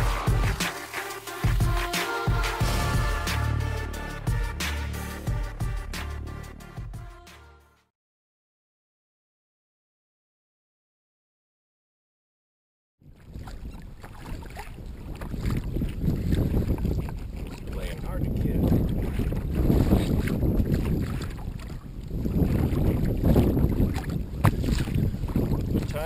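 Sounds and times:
water washing around a kayak: 0.0 - 2.9, 13.1 - 26.0
wind buffeting microphone: 13.0 - 26.0.

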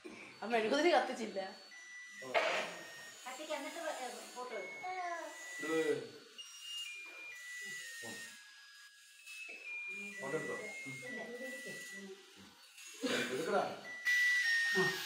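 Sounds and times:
beeping electronic tune: 0.5 - 8.4, 9.6 - 12.3, 13.8 - 15.0
people talking: 10.0 - 12.1.

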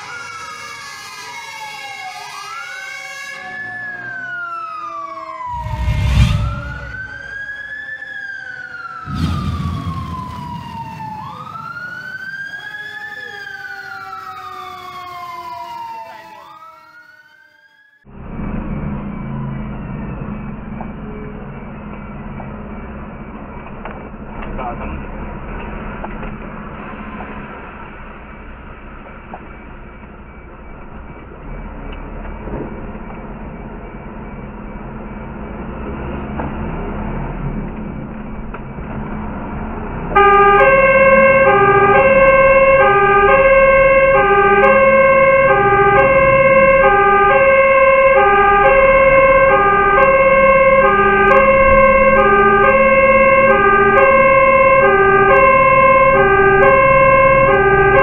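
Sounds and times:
truck engine and road noise: 0.0 - 16.6, 18.0 - 58.0
siren wailing: 0.0 - 58.0
heavy booms: 5.5 - 7.4, 9.1 - 11.9.

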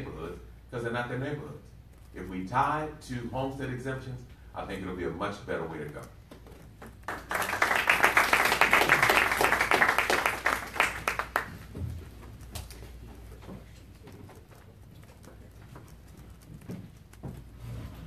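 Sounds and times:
audience clapping: 6.8 - 11.8.

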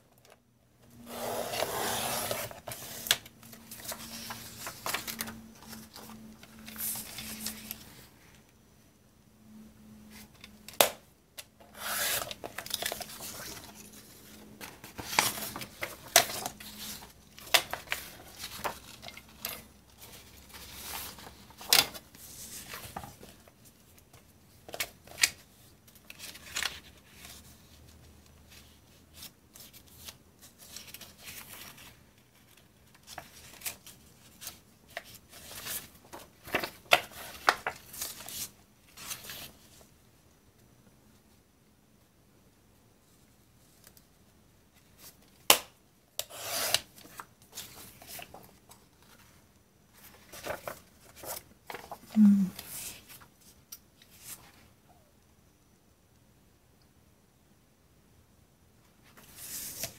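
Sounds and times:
paper sheets rustling: 1.4 - 8.1, 46.6 - 53.3.

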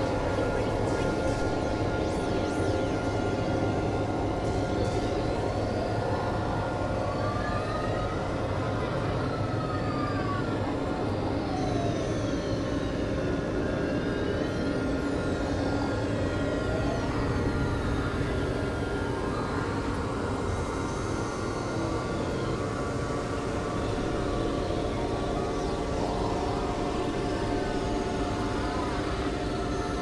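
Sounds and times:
noisy synthesizer drone: 0.0 - 30.0.

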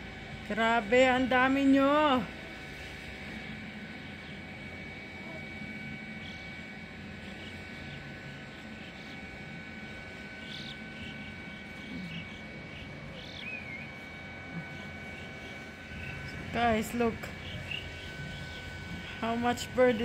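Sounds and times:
steady high whine: 0.0 - 20.0
birds calling: 2.6 - 20.0.

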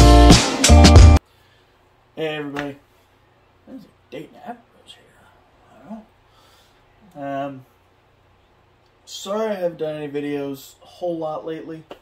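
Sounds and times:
room fans humming: 1.0 - 12.0.

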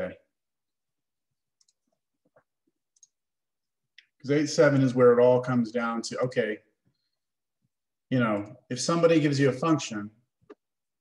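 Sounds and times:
computer mouse clicks: 1.6 - 3.2.

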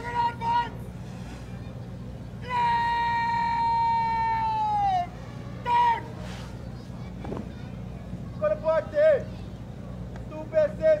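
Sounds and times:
person shouting drill commands: 0.0 - 0.8, 2.4 - 6.2.

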